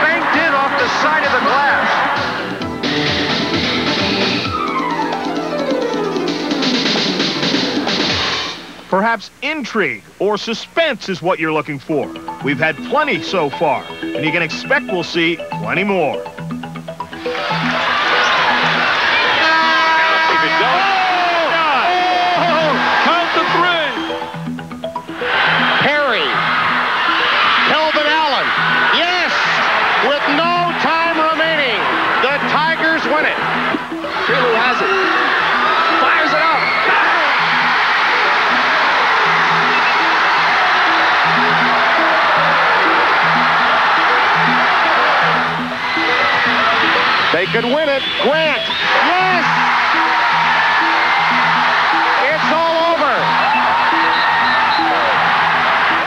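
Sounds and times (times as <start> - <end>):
excited shouting: 0.0 - 2.5, 17.4 - 24.3, 25.2 - 56.0
crowd cheering and yelling: 0.0 - 5.4, 17.2 - 56.0
music with a steady beat: 0.0 - 8.9, 12.0 - 20.0, 20.6 - 36.6, 37.2 - 56.0.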